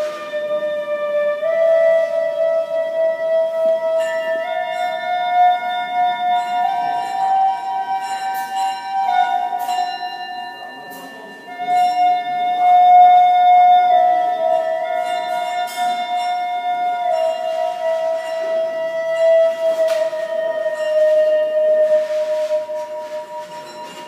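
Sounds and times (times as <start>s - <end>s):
ringing bell-like tones: 3.8s - 24.0s
wind instrument long note: 11.2s - 24.0s.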